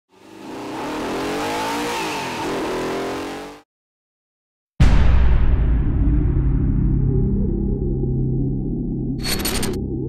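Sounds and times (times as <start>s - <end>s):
car engine revving at speed: 0.1s - 3.6s.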